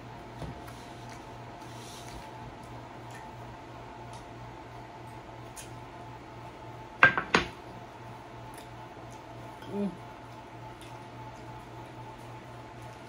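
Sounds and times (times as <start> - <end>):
glass dish knocking on wood: 7.0 - 7.6.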